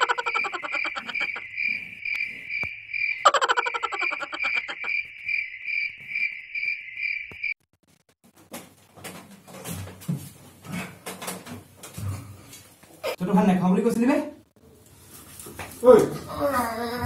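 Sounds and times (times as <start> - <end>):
frog-like croaking: 0.0 - 7.5
cricket chirping: 0.0 - 7.6.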